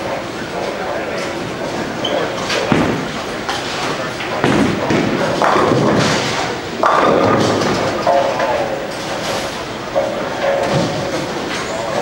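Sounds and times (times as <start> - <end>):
background chatter: 0.0 - 12.0
bowling balls thudding: 2.2 - 12.0
bowling pins clattering: 2.2 - 12.0.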